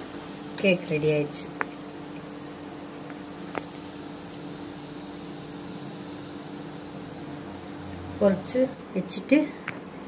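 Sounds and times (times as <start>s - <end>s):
hot oil sizzling: 0.0s - 9.4s
steady low hum: 0.0s - 10.0s.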